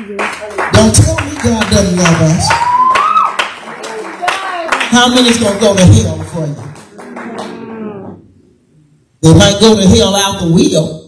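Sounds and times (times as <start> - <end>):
scattered hand claps: 0.0 - 7.6.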